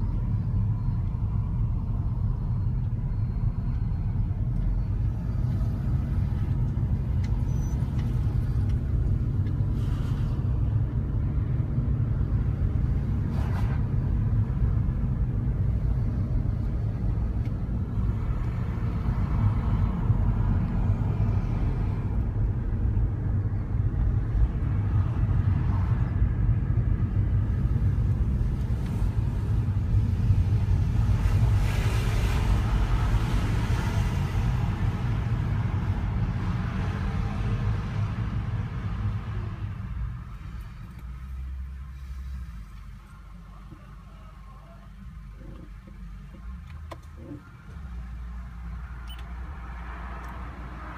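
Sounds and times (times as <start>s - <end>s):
car engine and road rumble: 0.0s - 50.9s.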